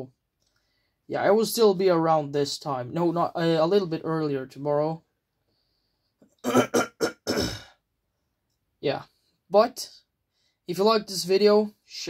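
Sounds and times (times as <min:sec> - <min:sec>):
man coughing: 0:06.4 - 0:07.8.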